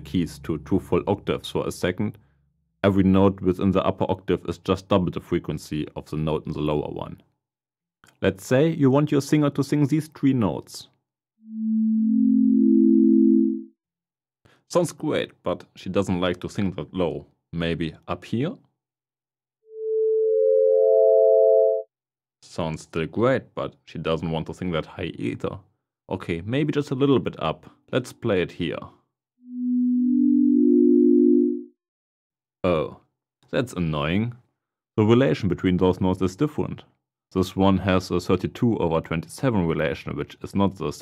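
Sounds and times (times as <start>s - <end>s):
electronic sine tone chord: 11.5s - 13.7s, 19.8s - 21.8s, 29.5s - 31.7s.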